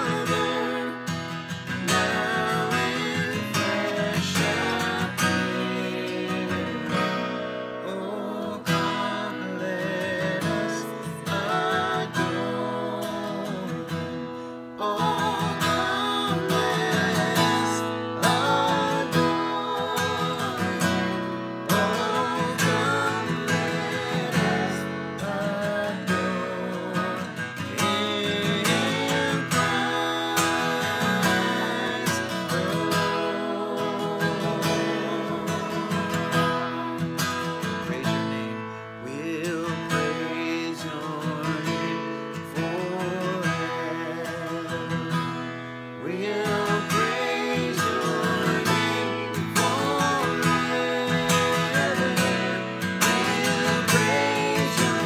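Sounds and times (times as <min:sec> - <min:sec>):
people singing together: 0:00.0 - 0:41.8, 0:46.0 - 0:55.0
acoustic guitar strumming: 0:00.0 - 0:55.0.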